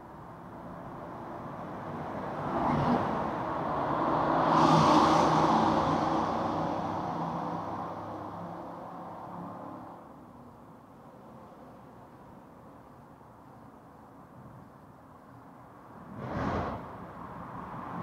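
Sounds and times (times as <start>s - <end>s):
vehicle passing by: 2.4s - 9.7s.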